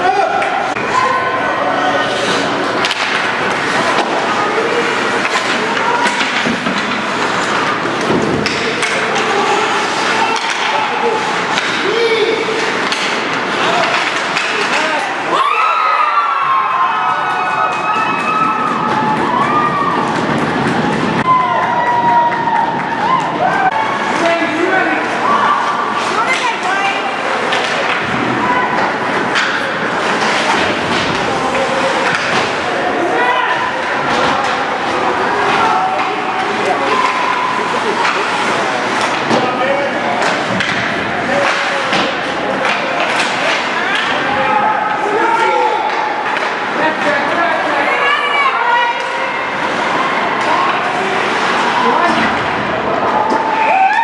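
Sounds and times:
spectators talking and shouting: 0:00.0 - 0:54.0
pucks and sticks hitting boards: 0:02.0 - 0:15.4, 0:17.0 - 0:54.0.

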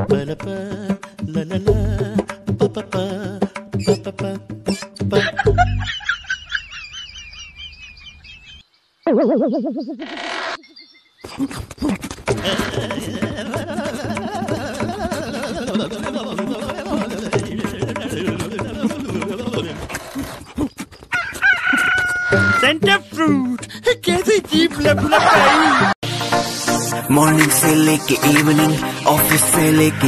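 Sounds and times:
bird-like chirps: 0:06.7 - 0:12.0
loud wobbling tone: 0:09.1 - 0:10.6
rooster crowing: 0:21.1 - 0:22.6.

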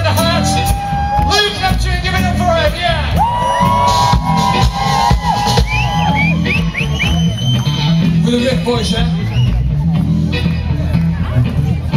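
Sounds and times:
funk band playing: 0:00.0 - 0:11.9.

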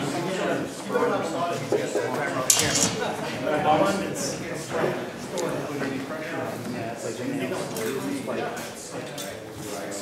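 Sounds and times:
people talking: 0:00.0 - 0:10.0
sword blades clashing: 0:02.5 - 0:03.0.

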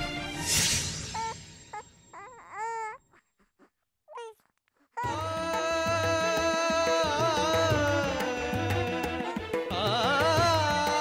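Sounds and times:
infant crying: 0:01.0 - 0:06.2.

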